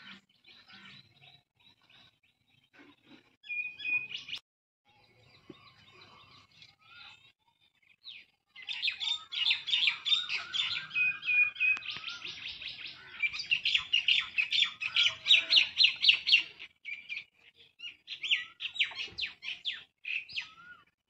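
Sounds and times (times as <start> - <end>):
small birds chirping: 0.0 - 21.0.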